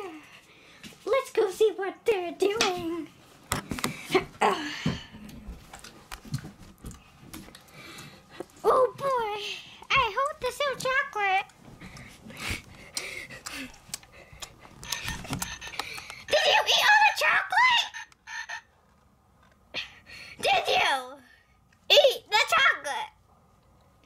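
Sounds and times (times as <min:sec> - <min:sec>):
high-pitched puppet voice babbling: 0:16.3 - 0:18.6.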